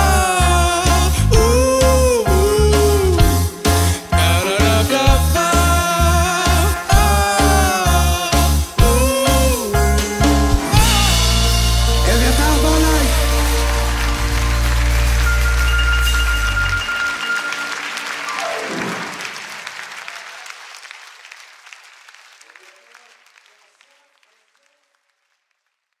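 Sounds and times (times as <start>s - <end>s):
band holding final chord: 10.6s - 17.8s
audience applause: 11.1s - 25.7s.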